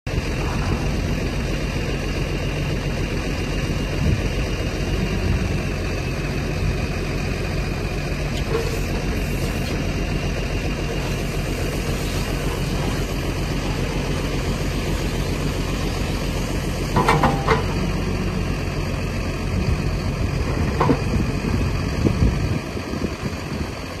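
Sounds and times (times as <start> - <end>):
tractor engine idling: 0.1 - 24.0.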